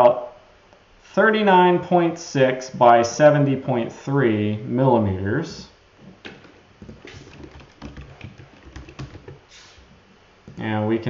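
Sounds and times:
keyboard key clicks: 0:06.9 - 0:09.4.

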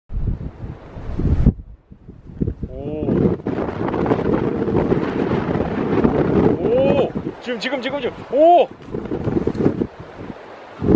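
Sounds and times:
wind buffeting microphone: 0:00.1 - 0:10.9.

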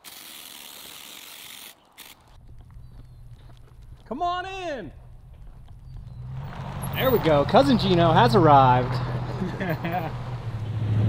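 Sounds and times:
hand pump sprayer hissing: 0:00.0 - 0:02.3
vehicle engine and tyre rumble: 0:01.8 - 0:11.0.

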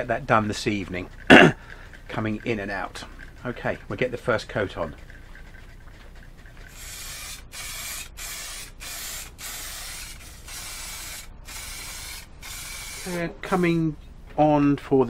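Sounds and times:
aerosol can spraying: 0:06.7 - 0:13.2.

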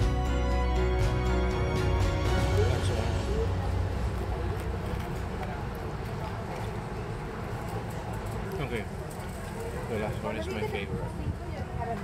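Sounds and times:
indistinct chatter: 0:00.3 - 0:12.0
steady low rumble: 0:01.1 - 0:06.4.

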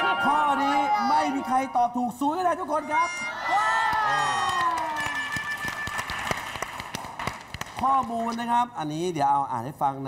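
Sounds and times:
scattered short claps: 0:03.9 - 0:08.4.

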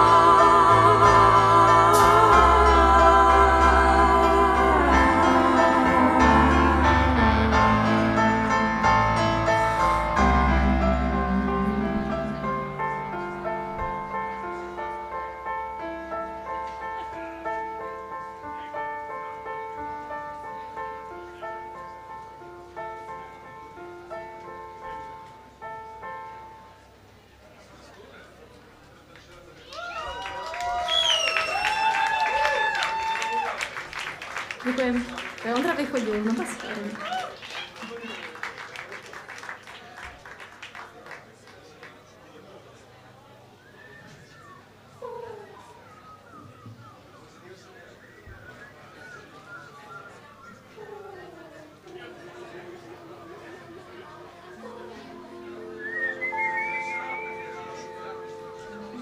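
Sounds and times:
wavering high melody: 0:00.0 - 0:16.4
held keyboard chords: 0:00.0 - 0:27.3, 0:53.8 - 0:59.0
audience clapping: 0:29.1 - 0:42.5
audience whooping: 0:29.6 - 0:40.8.

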